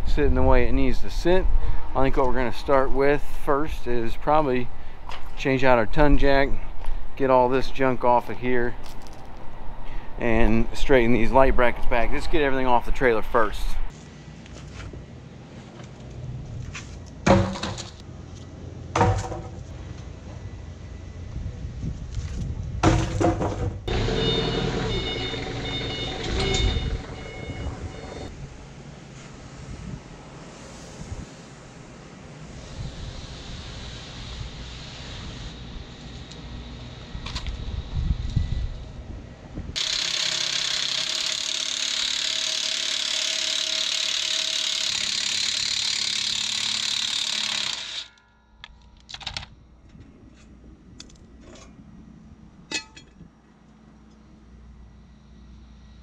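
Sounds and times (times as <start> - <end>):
cordless power tool running: 23.9 - 26.7, 39.8 - 48.2
metal parts clanking: 52.7 - 53.2.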